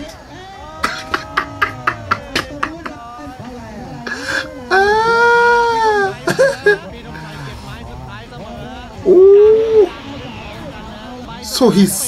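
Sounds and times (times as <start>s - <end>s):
man laughing hard: 0.9s - 3.0s, 4.7s - 6.9s.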